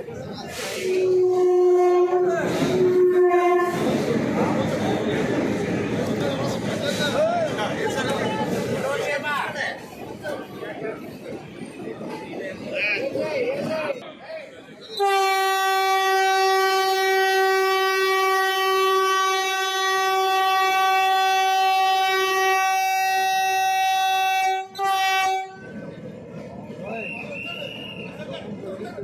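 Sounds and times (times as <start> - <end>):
train horn blast: 0.6 - 4.1, 14.9 - 25.8.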